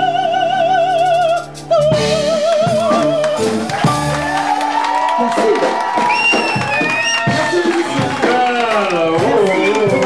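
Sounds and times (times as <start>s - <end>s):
live band music: 0.0s - 10.0s
crowd cheering: 3.2s - 10.0s
high whistle: 6.0s - 7.5s.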